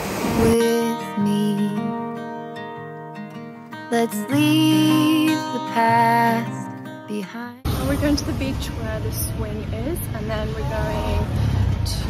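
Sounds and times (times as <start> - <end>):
woman speaking: 7.2 - 11.3.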